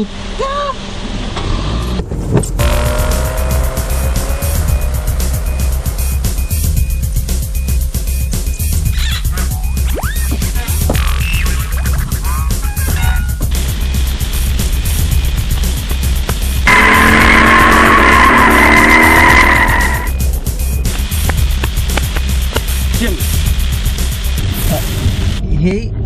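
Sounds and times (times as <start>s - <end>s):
background music with low beat: 2.5s - 25.4s
car tyres squealing: 16.6s - 20.2s.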